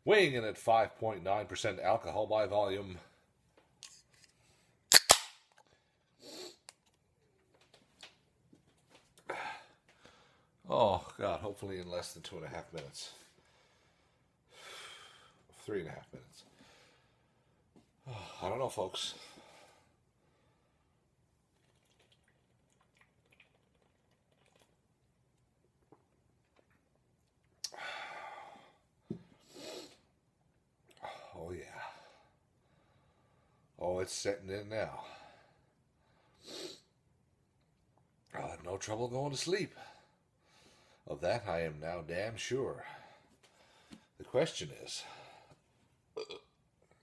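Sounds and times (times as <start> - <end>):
beer can tab snapping open: 4.9 - 5.4.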